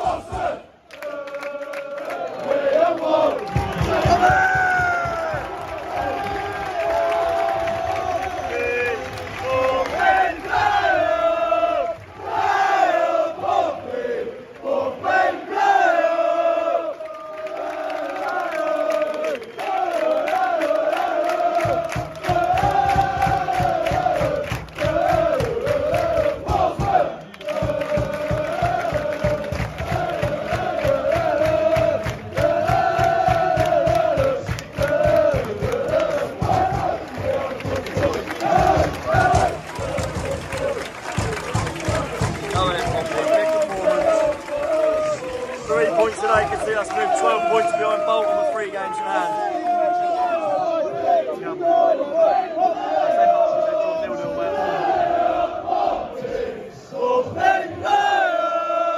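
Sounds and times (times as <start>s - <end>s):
rhythmic clapping: 0.0s - 13.5s, 16.5s - 49.0s
football crowd chanting: 0.0s - 58.9s.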